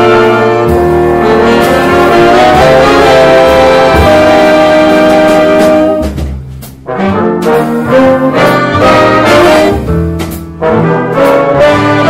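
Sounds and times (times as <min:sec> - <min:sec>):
brass section playing jazz ballad: 0:00.0 - 0:12.0.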